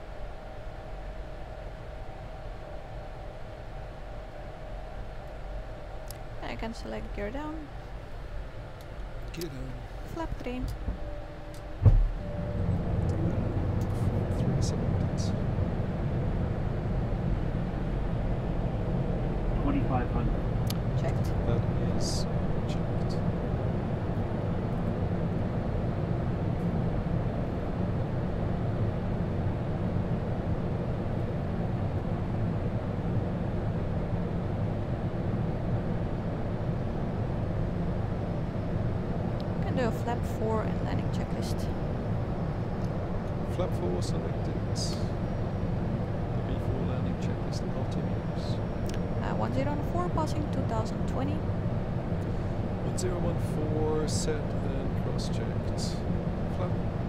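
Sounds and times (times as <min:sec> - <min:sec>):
low rumble in cockpit: 0:00.0 - 0:57.0
landing gear thump: 0:11.8 - 0:12.2.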